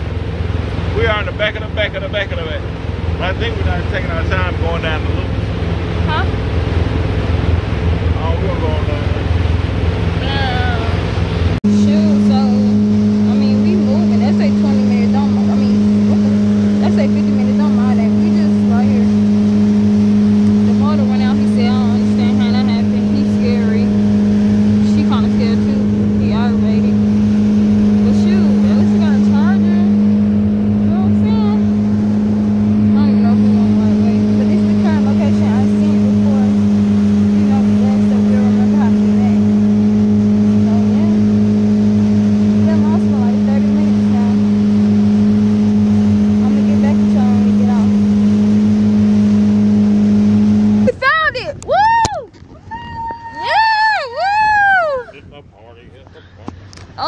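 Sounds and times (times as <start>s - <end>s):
motorboat engine droning: 0.0s - 57.0s
faint voices: 52.8s - 57.0s.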